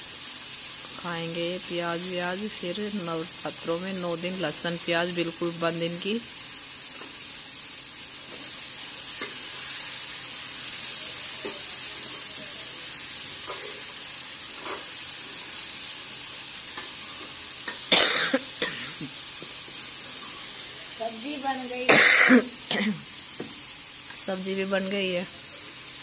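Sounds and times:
cauliflower sizzling in a pan: 0.0 - 26.0
spoon stirring and scraping pan: 8.2 - 9.9, 13.2 - 15.5, 16.6 - 17.9.

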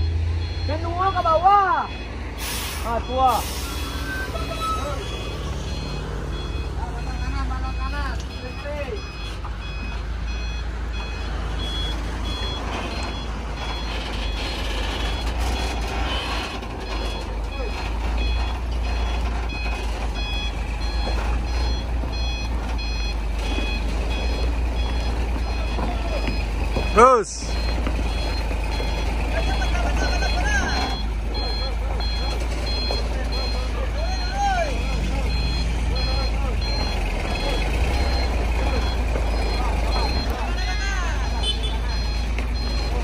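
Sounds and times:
diesel engine running: 0.0 - 43.0
truck reversing alarm beeping: 0.0 - 43.0.

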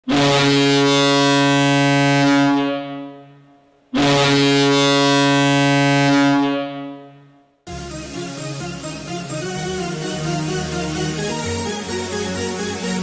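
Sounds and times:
goal horn blasts: 0.1 - 7.4.

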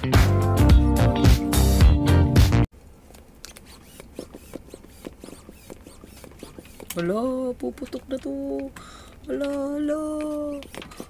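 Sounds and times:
hand pump squeaking and clicking: 3.4 - 11.0.

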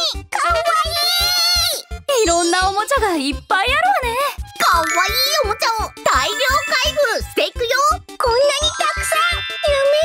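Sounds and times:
upbeat children's music: 0.0 - 10.0
high-pitched cartoon voice talking: 3.6 - 10.0
sparkling chime effects: 4.6 - 7.4, 8.6 - 10.0.

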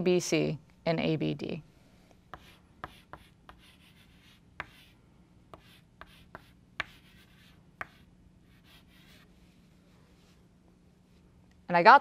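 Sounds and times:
chalk tapping and scratching: 2.3 - 4.9, 5.5 - 9.6.

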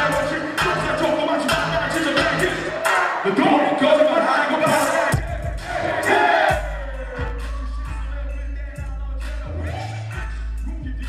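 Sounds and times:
live hip hop music: 0.0 - 11.0
deep bass and kick drum: 5.1 - 11.0.

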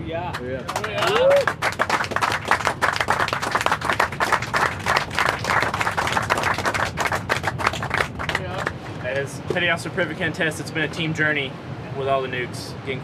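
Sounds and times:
people applauding: 0.2 - 9.3.

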